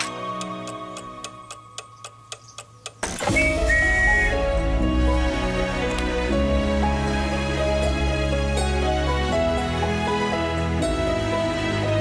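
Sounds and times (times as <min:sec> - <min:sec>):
soft music: 0:00.0 - 0:12.0
mechanical clock ticking: 0:00.4 - 0:03.3.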